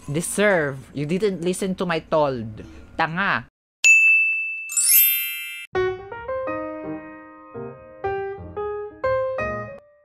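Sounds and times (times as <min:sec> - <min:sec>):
bright ringing ding: 0:03.8 - 0:05.7
rising sparkly chime shimmer: 0:04.7 - 0:05.7
piano music: 0:04.8 - 0:10.0.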